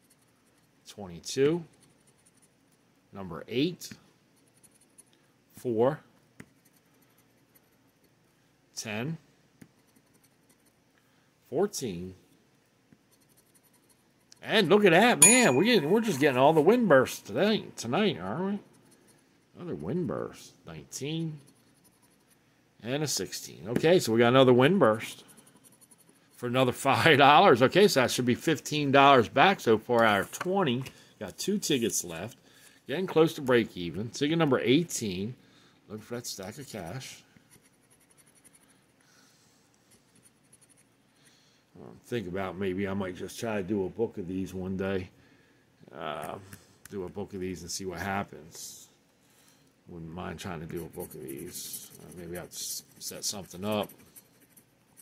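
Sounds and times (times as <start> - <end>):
plastic scratcher on lottery ticket: 0.0 - 0.8, 50.7 - 55.0
scratching lottery ticket: 0.0 - 3.0, 4.3 - 5.2, 6.4 - 8.4, 9.7 - 10.8, 13.0 - 15.1, 16.0 - 27.2, 36.4 - 39.0, 39.8 - 41.0, 50.4 - 55.0
person speaking: 14.4 - 18.9, 19.5 - 21.6, 22.8 - 25.4, 26.4 - 37.3, 49.9 - 54.6.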